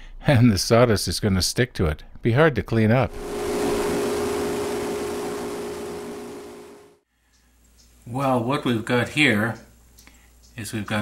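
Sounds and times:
lathe whining: 0:03.1 - 0:06.9.

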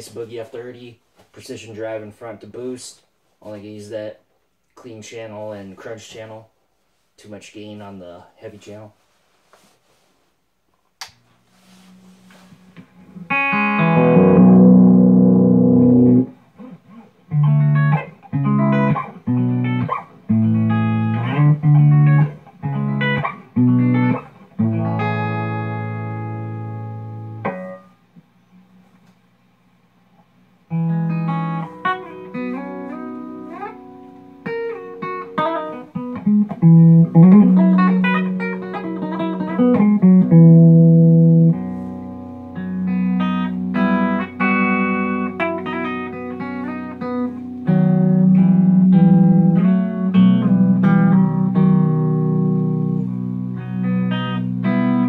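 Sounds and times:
clean electric guitar chords: 0:11.7 - 0:28.7, 0:30.7 - 0:55.0
picked arpeggiated guitar notes: 0:12.8 - 0:27.9, 0:30.7 - 0:55.0.

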